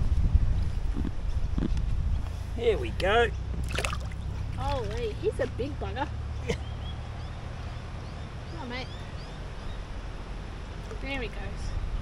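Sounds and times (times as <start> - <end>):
wind rumble on microphone: 0.0 - 6.4, 8.1 - 12.0.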